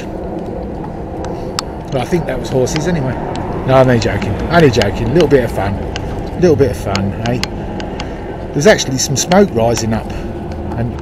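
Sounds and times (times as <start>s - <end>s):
faint clicks: 0.0s - 11.0s
vehicle engine running: 0.0s - 11.0s.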